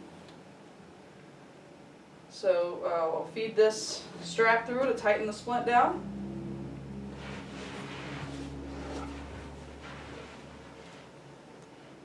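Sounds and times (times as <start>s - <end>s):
low hum: 4.0s - 12.0s.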